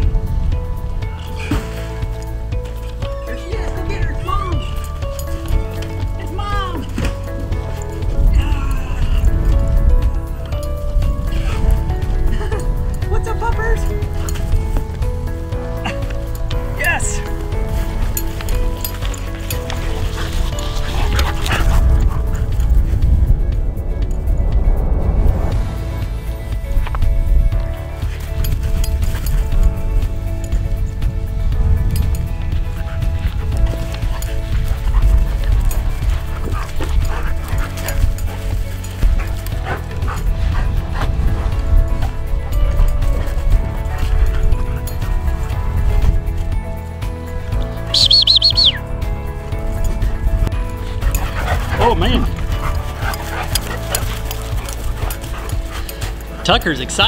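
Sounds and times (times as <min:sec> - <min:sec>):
dogs barking and yipping: 0:00.0 - 0:24.2, 0:26.6 - 0:57.0
background music: 0:00.0 - 0:57.0
high dog yelps: 0:47.9 - 0:48.8.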